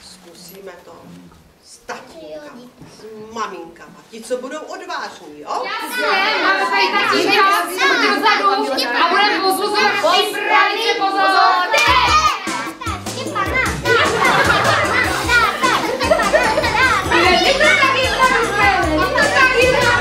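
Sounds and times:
children shouting and cheering: 5.6 - 20.0
music playing: 11.5 - 20.0.

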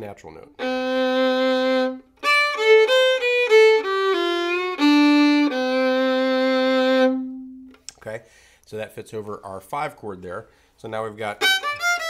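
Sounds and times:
solo fiddle playing: 0.5 - 7.8, 11.3 - 12.0.

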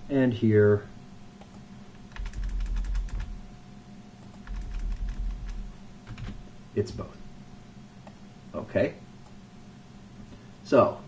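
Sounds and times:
computer keyboard typing: 2.1 - 3.4, 4.2 - 7.0.

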